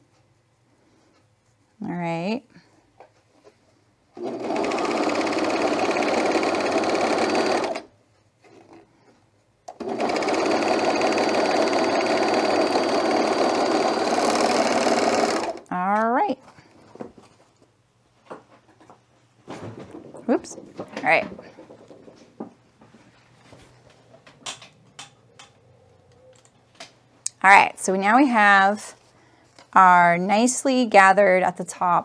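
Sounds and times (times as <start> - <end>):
serger stitching through fabric: 4.2 - 8.8, 9.7 - 15.7.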